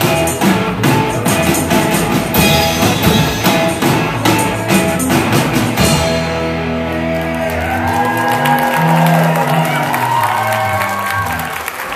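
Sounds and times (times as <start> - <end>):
electric guitars and bass chord ringing: 0.0 - 11.5
drums: 0.0 - 11.9.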